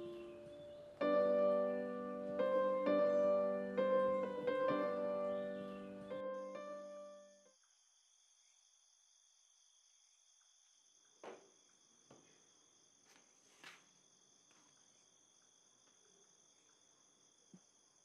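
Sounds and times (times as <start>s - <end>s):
soft footsteps: 13.0s - 15.0s.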